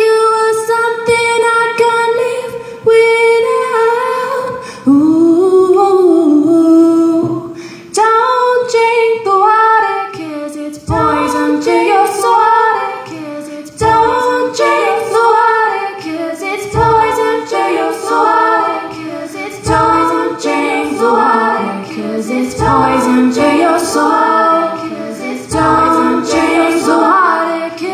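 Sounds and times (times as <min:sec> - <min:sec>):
layered female vocal harmonies: 0:00.0 - 0:27.9.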